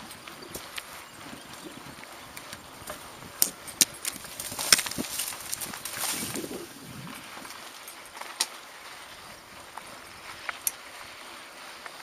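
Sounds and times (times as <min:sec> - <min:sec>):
bike clicks and rattles: 0:00.0 - 0:12.0
tyre and wind noise: 0:00.0 - 0:12.0.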